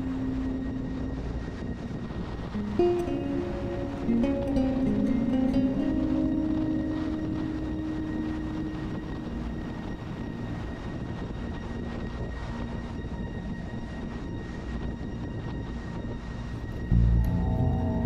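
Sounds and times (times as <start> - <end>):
background music note: 0.0 - 11.0, 16.8 - 18.0
wind noise: 0.0 - 18.0.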